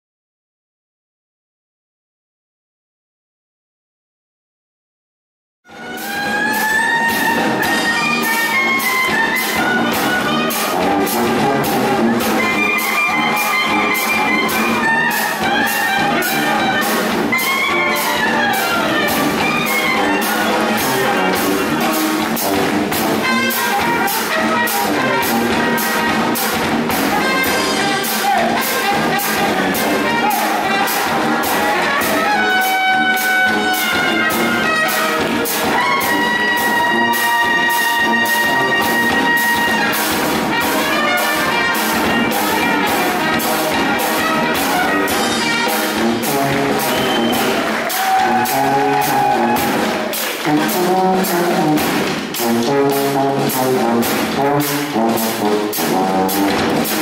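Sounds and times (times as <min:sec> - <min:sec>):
jazz band playing: 0:05.7 - 0:57.0
fast drum beat: 0:05.8 - 0:57.0
horn holding long note: 0:27.2 - 0:51.8.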